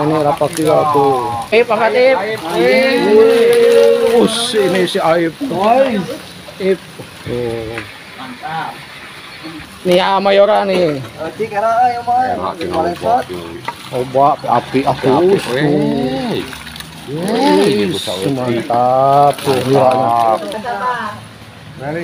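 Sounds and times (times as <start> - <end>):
people talking and calling out: 0.0 - 22.0.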